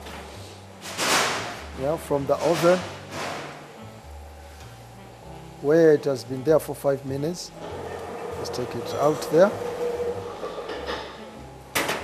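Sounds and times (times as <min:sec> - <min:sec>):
ceramic plate scraping on steel: 0:07.7 - 0:11.2.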